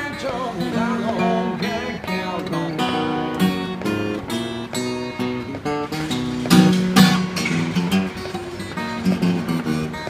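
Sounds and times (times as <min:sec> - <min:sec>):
acoustic blues guitar: 0:00.0 - 0:10.0.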